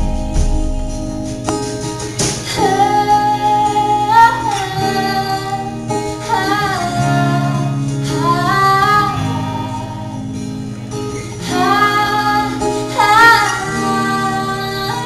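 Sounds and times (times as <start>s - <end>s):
acoustic guitar: 0.0s - 15.0s
woman singing long notes: 2.6s - 10.3s, 11.4s - 15.0s.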